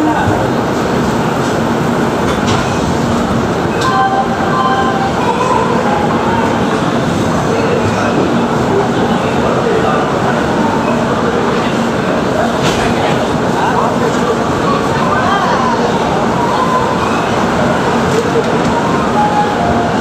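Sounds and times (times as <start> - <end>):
train rumbling and rattling: 0.0 - 20.0.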